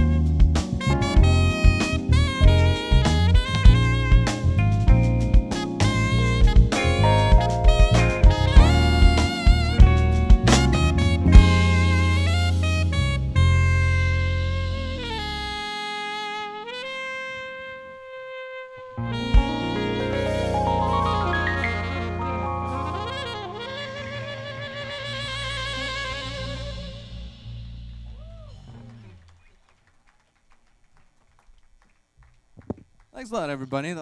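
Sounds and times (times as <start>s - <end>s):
band playing: 0.0s - 16.8s, 19.0s - 29.1s
saxophone playing held note: 5.6s - 29.2s
band final chord ringing: 19.2s - 23.8s
scattered hand claps: 28.7s - 33.1s.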